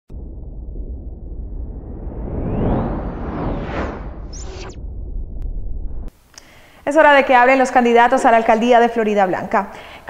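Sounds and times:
low rumble: 0.1s - 6.2s.

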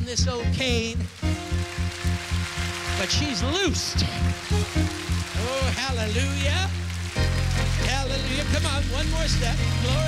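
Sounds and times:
held keyboard chord: 0.2s - 10.0s.

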